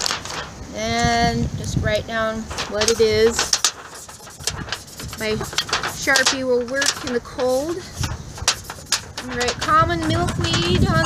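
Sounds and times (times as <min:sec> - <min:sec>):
wind buffeting microphone: 0:00.0 - 0:11.0
marker scratching on foil: 0:02.4 - 0:11.0.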